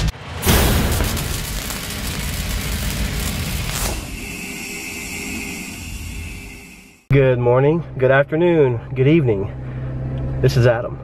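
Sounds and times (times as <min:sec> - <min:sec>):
hit: 0:00.0 - 0:04.2
high ringing tone: 0:03.7 - 0:07.2.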